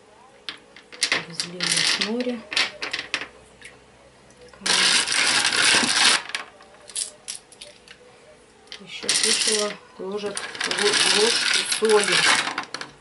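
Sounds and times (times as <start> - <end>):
stones clicking set down: 0.5 - 3.3
pebbles rattling and clinking: 0.8 - 3.3, 4.6 - 7.7, 8.7 - 13.0.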